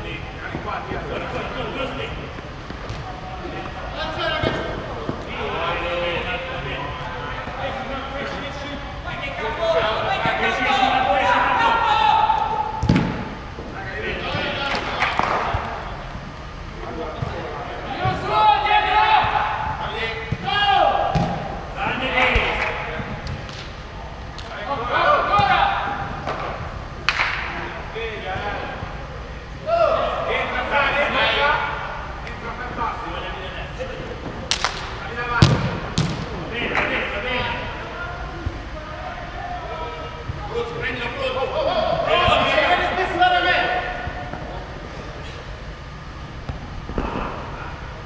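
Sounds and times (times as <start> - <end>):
players shouting: 3.1 - 16.0, 17.3 - 23.0, 24.6 - 26.3, 29.6 - 32.1, 34.6 - 44.8.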